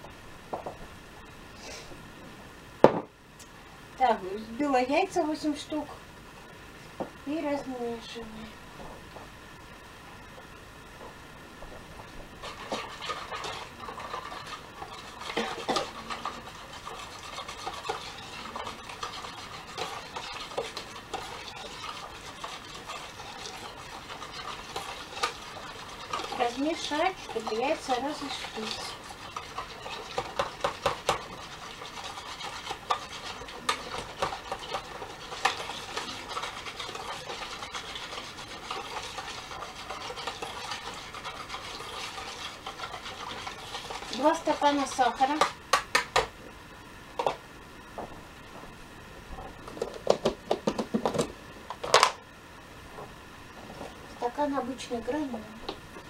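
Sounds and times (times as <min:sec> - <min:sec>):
utensil scraping plastic bowl: 0:12.4 - 0:45.5.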